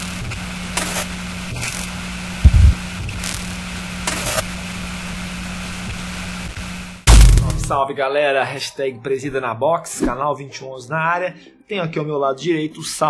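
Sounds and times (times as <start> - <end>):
crackling bursts: 0.0 - 7.8
static hiss: 0.0 - 7.8
low electrical hum: 0.1 - 7.8
deep boom: 2.5 - 2.9, 7.1 - 7.8.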